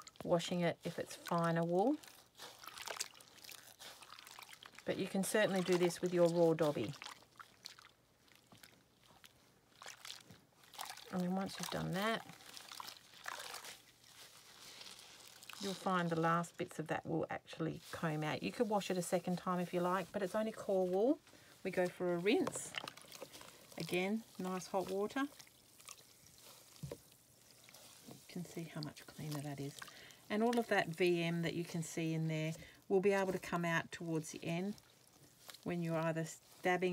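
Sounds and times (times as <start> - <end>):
soft splashes and squelches in water: 0.0 - 36.9.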